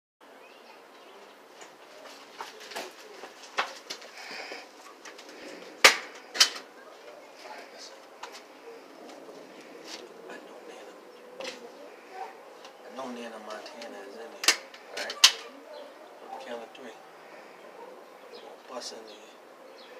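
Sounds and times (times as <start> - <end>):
faint background noise: 0.2 - 19.9.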